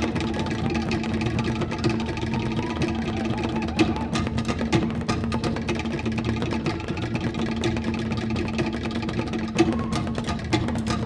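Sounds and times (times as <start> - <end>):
drums: 0.0 - 11.0
rapid slit drum strikes: 0.0 - 11.0.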